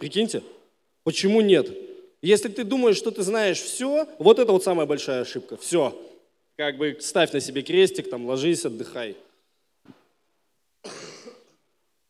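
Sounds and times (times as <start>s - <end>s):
man coughing: 10.8s - 11.6s.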